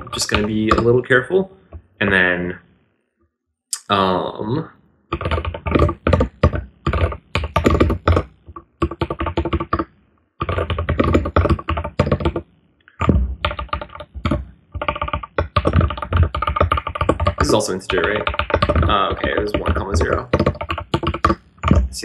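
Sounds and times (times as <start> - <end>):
fast typing on computer keyboard: 0.0 - 1.1, 5.2 - 22.0.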